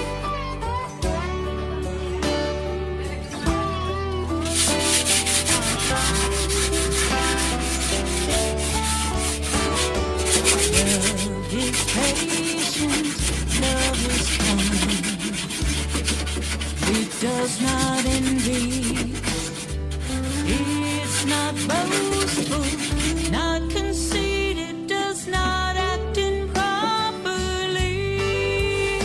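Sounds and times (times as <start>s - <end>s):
sandpaper scratching wood: 4.4s - 23.5s.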